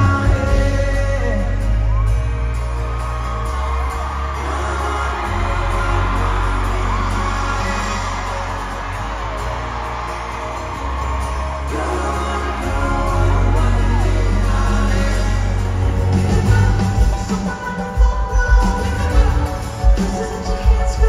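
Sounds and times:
person singing: 0.0s - 2.0s, 3.8s - 9.5s, 11.3s - 21.0s
acoustic guitars: 0.0s - 21.0s
steady bass: 0.0s - 21.0s.

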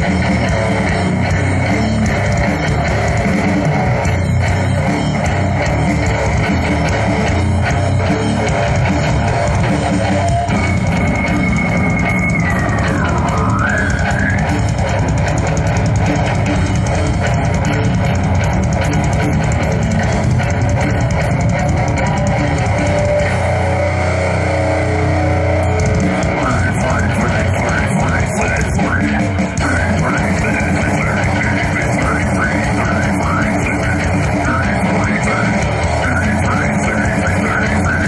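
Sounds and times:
bass guitar: 0.0s - 38.0s
distorted electric guitar: 0.0s - 38.0s
live rock band playing: 0.0s - 38.0s
rapid drumming: 0.0s - 38.0s.

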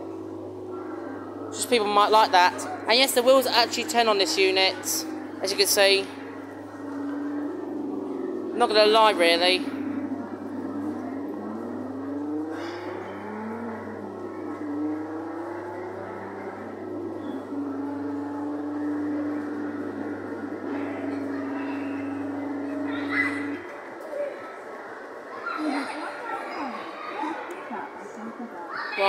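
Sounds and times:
electronic car engine sound effects: 0.0s - 26.1s
low hum: 0.0s - 28.6s.

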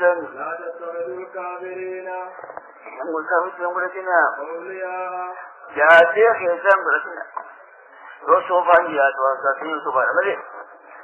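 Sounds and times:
man speaking: 0.0s - 7.3s, 8.2s - 10.8s.

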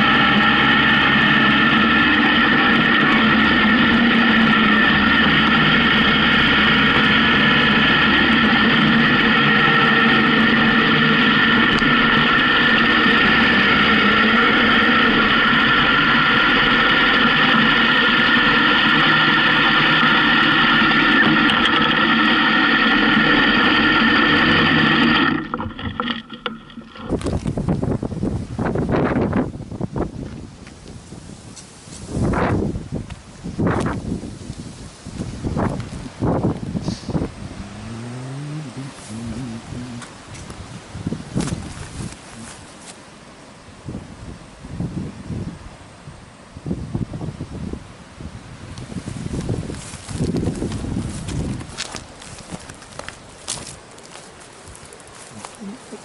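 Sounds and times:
motorcycle engine running: 0.0s - 21.9s, 37.4s - 40.5s
wind buffeting microphone: 0.0s - 42.7s, 43.8s - 53.8s.

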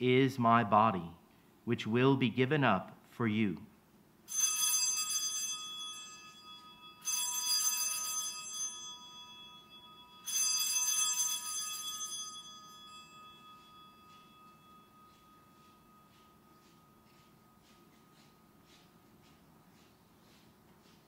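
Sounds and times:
altar bells ringing: 4.3s - 20.0s.

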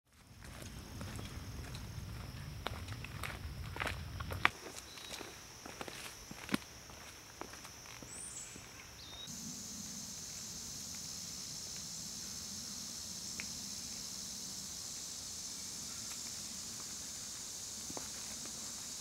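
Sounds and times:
footsteps on dirt trail: 0.1s - 9.3s, 16.8s - 19.0s
high insect drone: 0.2s - 19.0s.

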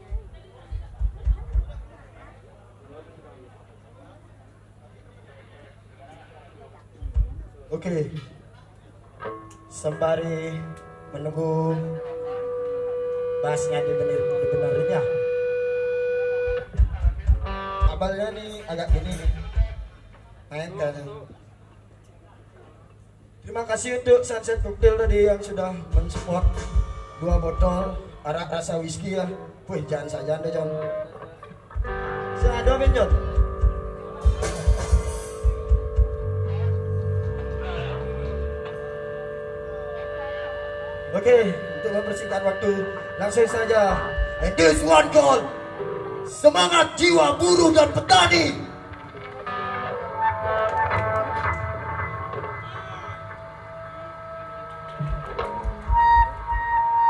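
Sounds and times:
heavy deep thumps: 0.0s - 1.9s
electric guitar note: 9.2s - 20.4s, 24.5s - 57.0s.

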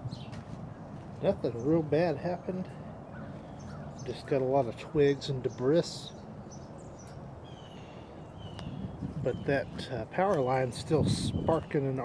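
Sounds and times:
low outdoor background noise: 0.0s - 12.0s.

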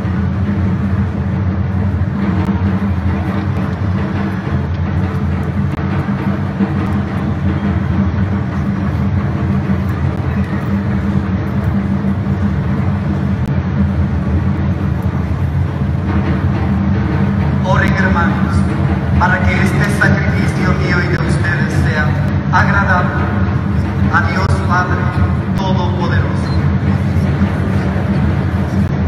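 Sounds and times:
pipe organ low chords: 0.0s - 29.0s.

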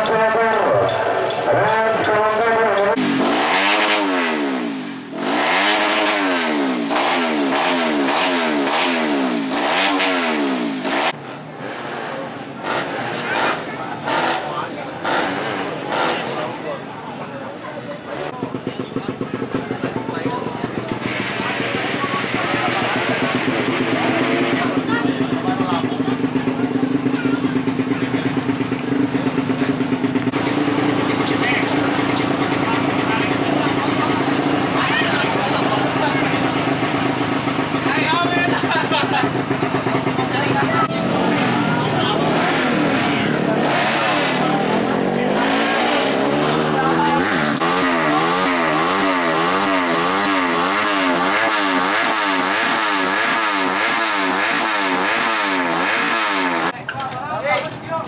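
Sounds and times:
motorcycle engine revving: 0.0s - 58.0s.

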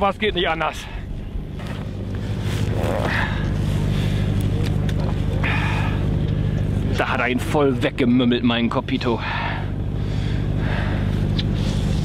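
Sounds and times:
boat engine humming: 0.0s - 12.0s.

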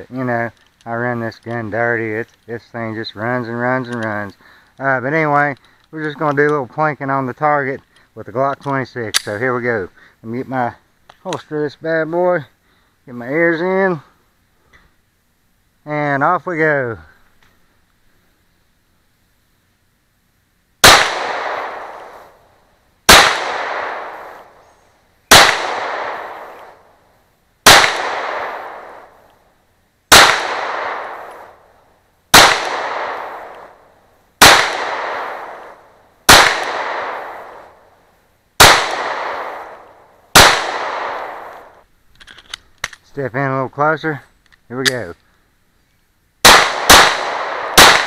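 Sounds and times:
pistol shots: 20.8s - 22.2s, 23.1s - 24.4s, 25.3s - 26.8s, 27.6s - 29.1s, 30.1s - 31.6s, 32.3s - 33.8s, 34.4s - 37.6s, 38.6s - 41.7s, 46.4s - 48.0s.

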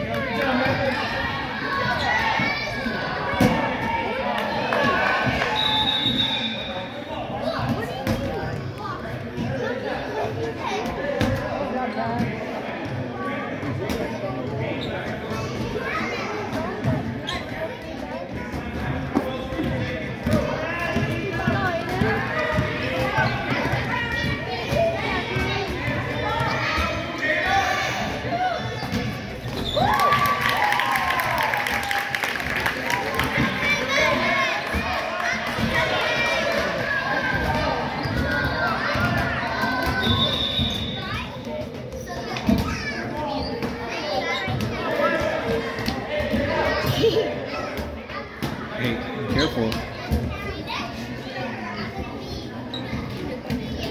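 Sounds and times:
children calling and chattering: 0.0s - 53.9s
voices echoing in a hall: 0.0s - 53.9s.

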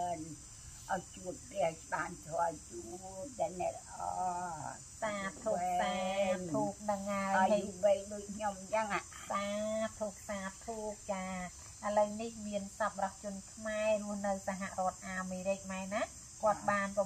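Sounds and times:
high-pitched insect drone: 0.0s - 17.0s
woman reading in sing-song voice: 0.9s - 8.6s.

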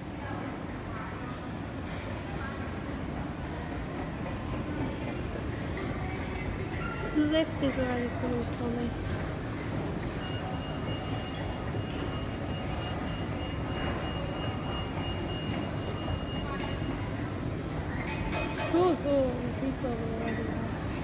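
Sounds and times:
shopping centre background din: 0.0s - 21.0s.

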